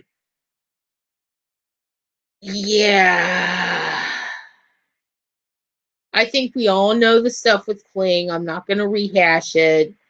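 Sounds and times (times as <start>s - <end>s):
woman saying yeah: 2.5s - 4.2s
breathy sigh: 3.0s - 4.7s.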